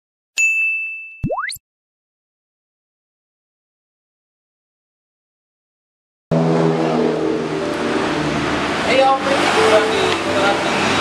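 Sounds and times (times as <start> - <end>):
bright bell-like ding: 0.4 - 1.2.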